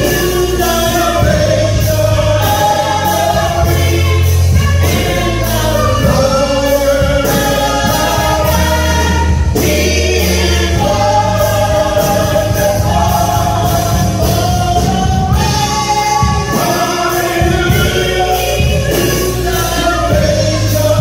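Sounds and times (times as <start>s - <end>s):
gospel group singing: 0.0s - 21.0s
low sustained bass notes: 0.0s - 21.0s.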